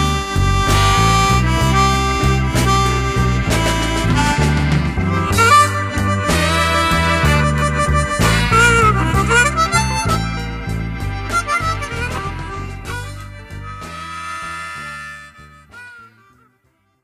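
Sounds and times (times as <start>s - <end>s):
band with bass and drums: 0.0s - 16.4s
blues harmonica: 0.0s - 17.0s.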